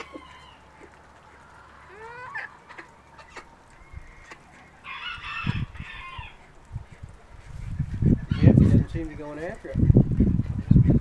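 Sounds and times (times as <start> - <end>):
chickens clucking: 0.0 - 11.0
rooster crowing: 4.8 - 6.4.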